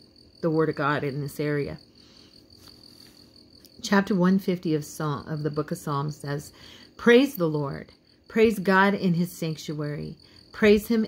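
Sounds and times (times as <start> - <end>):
woman speaking: 0.4 - 1.8, 3.8 - 11.0.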